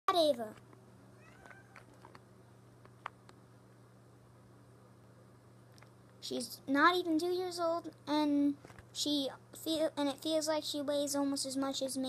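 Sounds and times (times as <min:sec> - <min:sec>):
cat meowing: 0:01.2 - 0:02.0.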